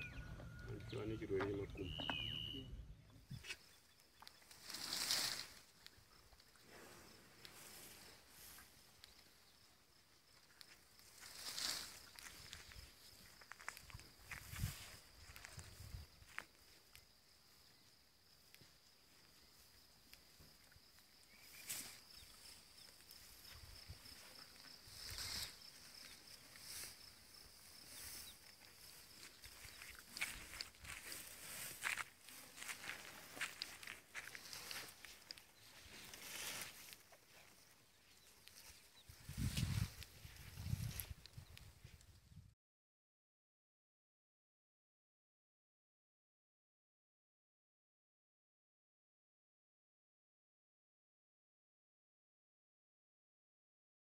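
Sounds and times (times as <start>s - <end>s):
rustling of leafy branches: 3.4s - 9.4s, 10.2s - 17.0s, 18.2s - 41.7s.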